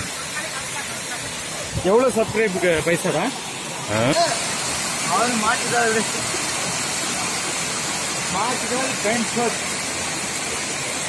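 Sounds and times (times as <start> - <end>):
waterfall rushing: 0.0 - 11.0
man speaking: 3.9 - 4.4.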